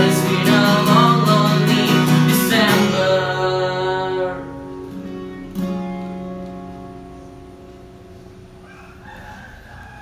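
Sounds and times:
strummed acoustic guitar chord: 0.0 - 8.4.

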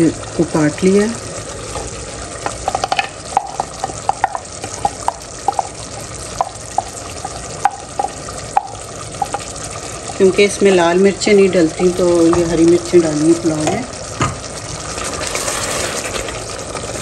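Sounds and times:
food sizzling in a pot: 0.0 - 17.0.

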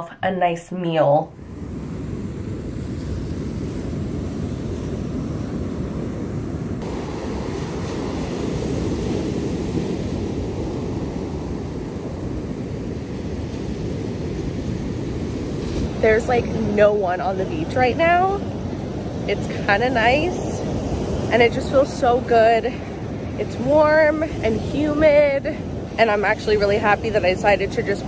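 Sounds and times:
wind on microphone: 1.3 - 28.0
ocean surf breaking: 1.4 - 28.0.

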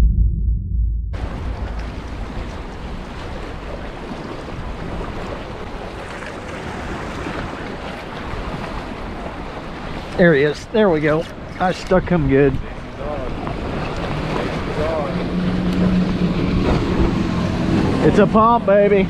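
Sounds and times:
deep low boom: 0.0 - 3.7
wind on microphone: 1.2 - 10.0, 12.4 - 18.3
waves washing against rocks: 1.2 - 11.2.

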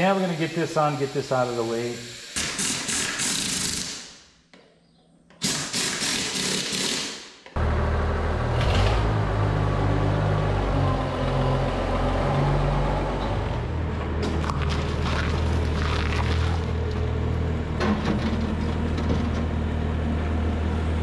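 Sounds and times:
compressed air hissing: 0.0 - 4.2
tractor engine running: 7.6 - 21.0.

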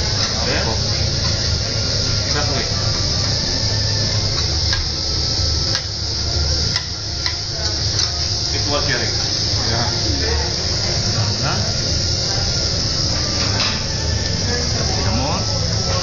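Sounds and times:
food sizzling on a griddle: 0.0 - 16.0
voices murmuring: 0.1 - 16.0.

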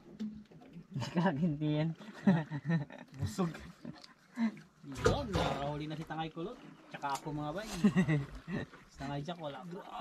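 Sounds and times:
men talking: 1.0 - 10.0.

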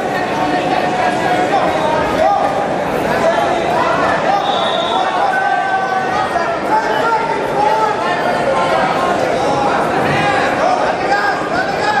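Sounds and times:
crowd babble: 0.0 - 12.0.

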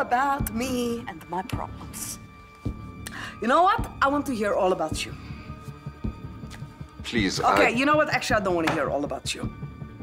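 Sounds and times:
dialogue: 0.0 - 10.0
tense background score: 0.0 - 10.0.

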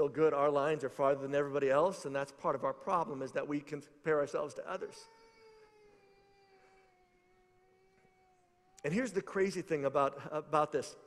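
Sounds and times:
person speaking: 8.8 - 11.0.

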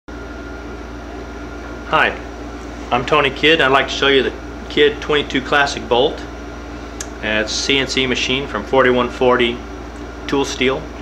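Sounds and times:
low electrical hum: 0.1 - 11.0.

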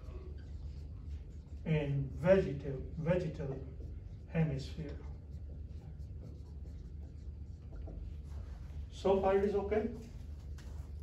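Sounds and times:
low room hum: 0.0 - 11.0
marker writing on whiteboard: 0.0 - 11.0.

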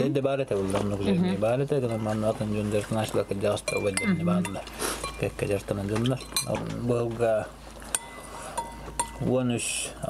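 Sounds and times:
man talking: 0.0 - 7.5, 9.2 - 10.0
cutlery clinking against dishes: 3.5 - 6.8.

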